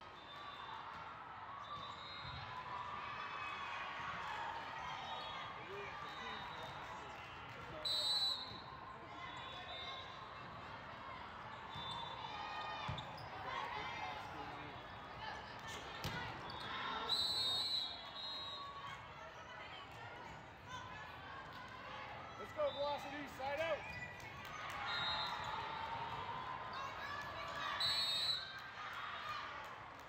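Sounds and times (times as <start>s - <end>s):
referee's whistle blast: 7.8s - 8.5s, 17.1s - 18.6s.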